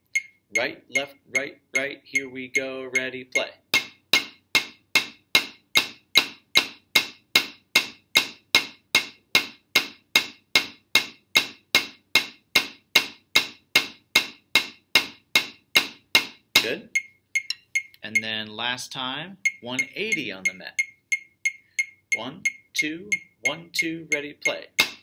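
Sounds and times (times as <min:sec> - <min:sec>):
metronome clicking: 0:00.0 - 0:03.5, 0:16.6 - 0:18.6, 0:19.4 - 0:25.0
drumsticks on rubber practice pad: 0:03.8 - 0:18.5, 0:24.7 - 0:25.0.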